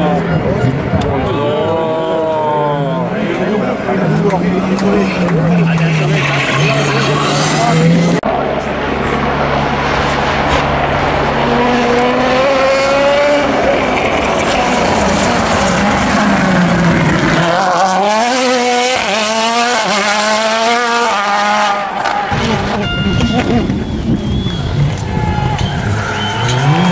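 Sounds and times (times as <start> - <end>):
rally car engines at full throttle: 0.0 - 26.9.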